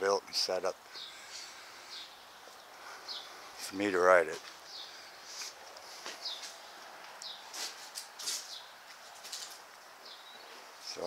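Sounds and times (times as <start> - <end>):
faint steady hiss: 0.0 - 11.0
small birds chirping: 0.0 - 11.0.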